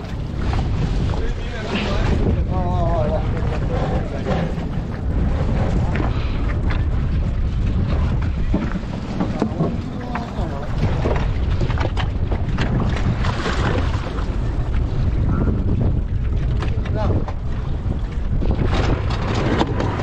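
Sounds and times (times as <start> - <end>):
outboard motor running: 0.0 - 20.0
water splashing and churning: 0.0 - 20.0
wind buffeting microphone: 0.0 - 20.0.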